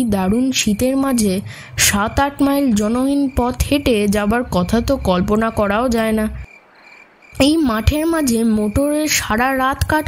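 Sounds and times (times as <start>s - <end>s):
person narrating a story: 0.0s - 6.4s, 7.4s - 10.0s
faint crickets chirping: 0.2s - 10.0s.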